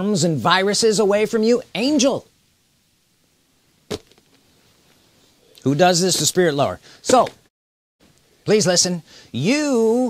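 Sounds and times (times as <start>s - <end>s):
sharp knock: 3.9s - 4.2s.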